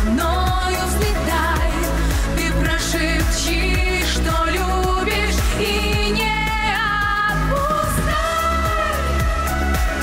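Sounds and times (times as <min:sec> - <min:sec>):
musical accompaniment with bass beat: 0:00.0 - 0:10.0
woman singing into a microphone: 0:00.0 - 0:10.0.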